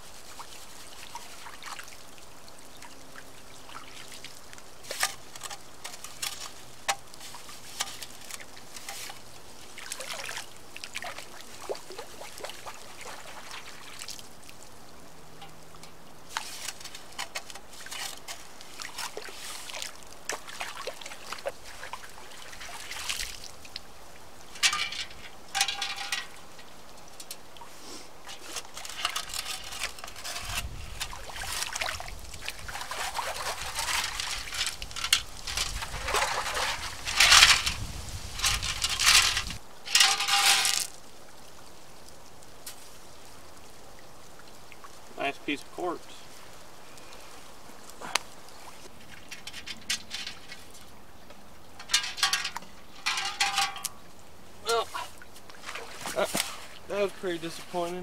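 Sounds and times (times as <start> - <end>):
water sloshing and splashing: 0.0 - 58.0.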